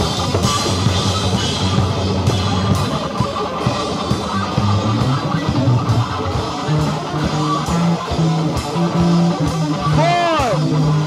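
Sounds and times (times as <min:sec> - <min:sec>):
bass guitar low notes: 0:00.0 - 0:11.0
electric guitar low notes: 0:00.0 - 0:11.0.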